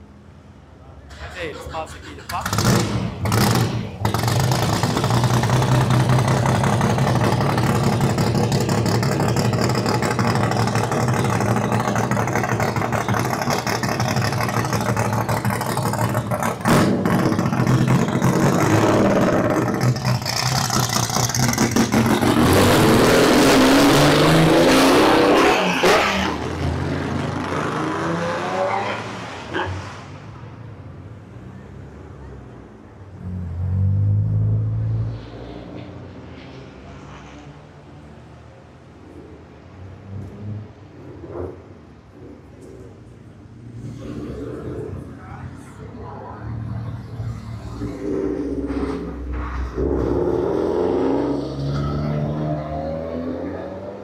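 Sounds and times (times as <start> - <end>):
race car engine idling and revving: 0.0 - 54.0
passing car engine: 1.0 - 54.0.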